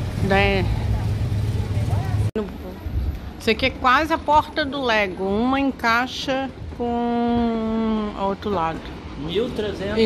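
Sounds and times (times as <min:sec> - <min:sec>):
city street traffic rumble: 0:00.0 - 0:10.0.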